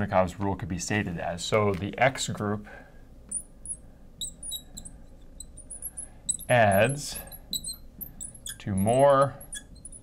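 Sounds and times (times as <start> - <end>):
marker squeaking on glass: 3.3 - 10.0.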